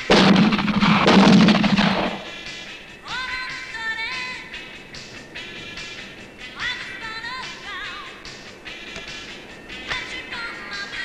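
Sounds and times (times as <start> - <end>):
gunshots volley: 0.0 - 2.4
low steady rumble: 0.0 - 11.0.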